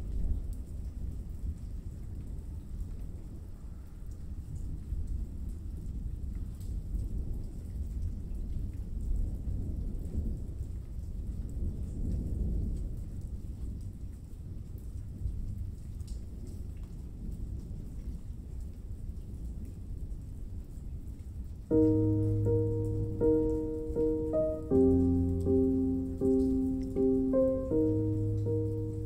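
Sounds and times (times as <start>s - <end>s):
rain patter: 0.0s - 29.0s.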